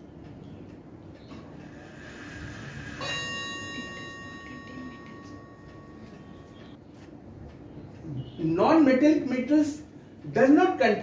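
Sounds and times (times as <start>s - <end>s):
bell ringing: 1.9s - 6.8s.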